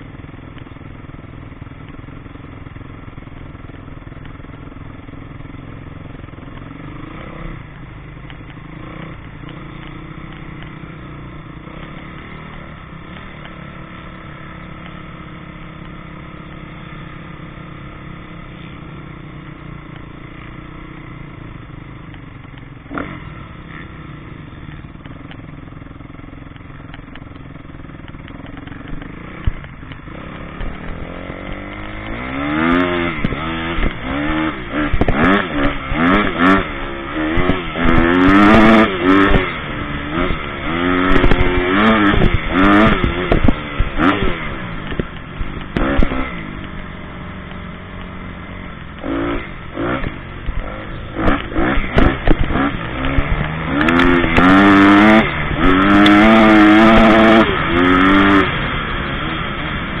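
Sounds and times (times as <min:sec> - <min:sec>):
motocross bike engine revving: 0:01.0 - 0:07.8, 0:08.5 - 0:22.1, 0:22.8 - 1:00.0.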